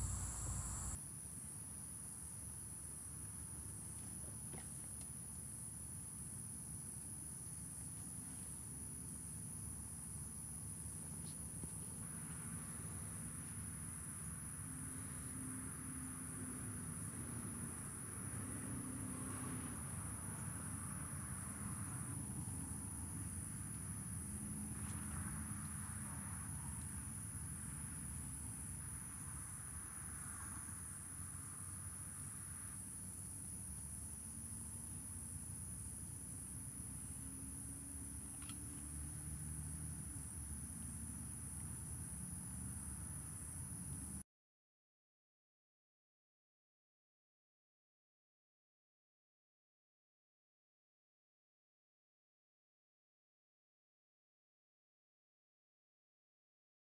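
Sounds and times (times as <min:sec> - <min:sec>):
insects droning: 0:00.0 - 0:44.2.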